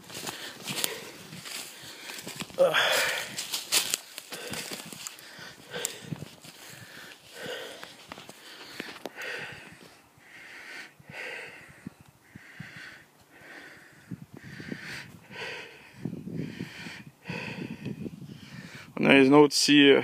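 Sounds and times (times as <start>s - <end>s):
footsteps crunching on dry leaves: 0.0s - 9.0s
person breathing heavily: 0.0s - 19.0s.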